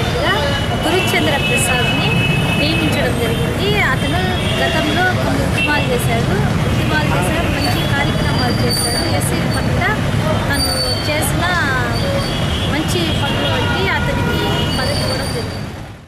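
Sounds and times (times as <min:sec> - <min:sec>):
road traffic rumble: 0:00.0 - 0:16.0
woman talking: 0:00.1 - 0:15.6.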